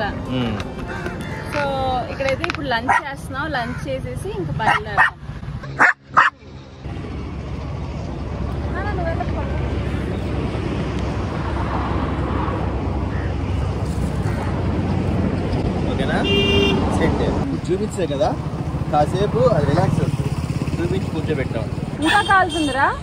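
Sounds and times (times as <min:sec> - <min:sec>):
puppy barking: 0:02.8 - 0:03.1, 0:04.6 - 0:06.4.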